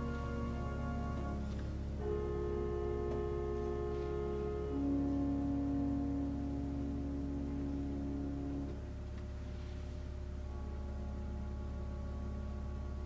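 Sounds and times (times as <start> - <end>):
organ playing sustained chords: 0.0 - 13.0.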